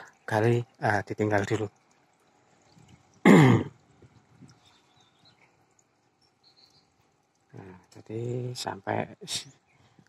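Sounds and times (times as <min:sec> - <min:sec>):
man clearing his throat: 0:03.2 - 0:03.8.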